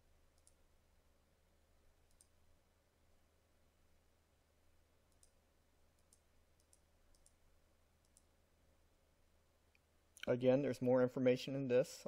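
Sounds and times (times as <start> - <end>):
computer mouse clicks: 0.3 - 0.6, 2.0 - 2.4, 5.1 - 5.4, 6.0 - 7.4, 8.0 - 8.3.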